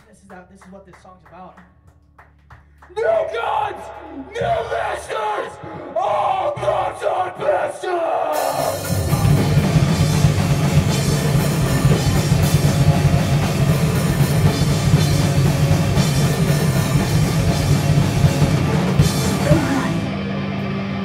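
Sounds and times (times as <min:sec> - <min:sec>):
distorted guitars: 0:08.3 - 0:21.0
drum kit: 0:08.3 - 0:21.0
bass guitar: 0:08.6 - 0:21.0.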